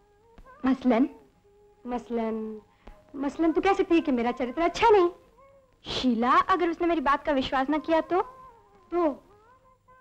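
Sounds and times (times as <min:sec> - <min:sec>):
faint background music: 0:00.0 - 0:10.0
woman speaking: 0:00.6 - 0:01.2, 0:01.8 - 0:05.2, 0:05.8 - 0:08.3, 0:08.9 - 0:09.3.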